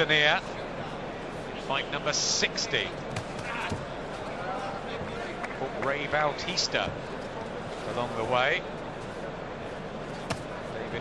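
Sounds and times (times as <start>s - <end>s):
faint crowd voices: 0.0s - 11.0s.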